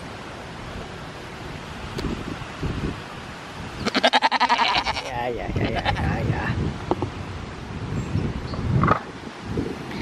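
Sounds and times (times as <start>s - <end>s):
goat bleating: 3.8s - 6.2s.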